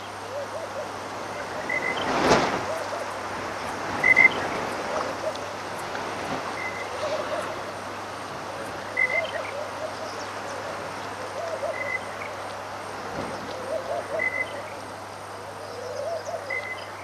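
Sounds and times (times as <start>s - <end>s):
steady hiss: 0.0s - 17.0s.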